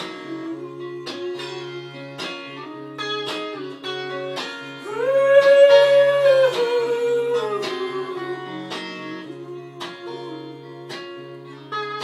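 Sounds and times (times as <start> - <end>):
solo guitar playing: 0.0 - 12.0.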